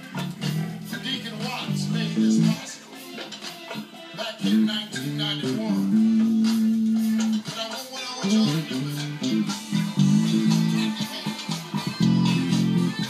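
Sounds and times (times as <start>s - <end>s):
electric bass guitar: 0.0s - 2.8s, 4.4s - 7.6s, 8.2s - 13.0s
background music: 0.0s - 13.0s.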